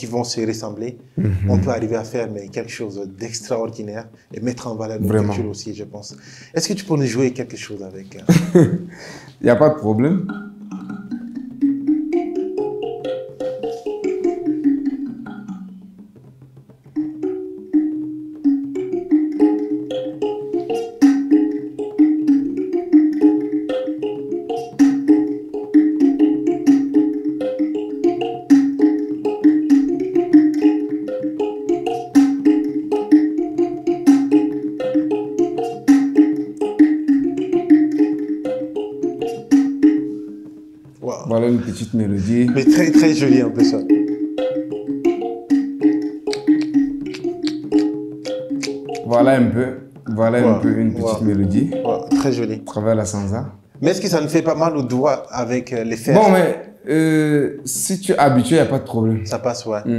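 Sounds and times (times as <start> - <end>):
thumb piano plucked: 9.9 - 54.9.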